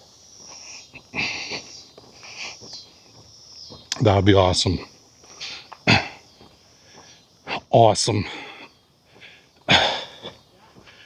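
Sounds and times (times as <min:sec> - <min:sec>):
faint breath: 0:00.5 - 0:02.8, 0:05.2 - 0:07.6, 0:08.2 - 0:11.0
man snorting exhale: 0:00.6 - 0:02.6, 0:05.4 - 0:06.2, 0:09.3 - 0:10.4.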